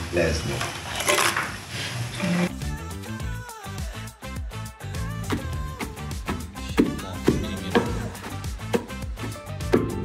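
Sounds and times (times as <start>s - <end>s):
background music: 2.4s - 10.0s.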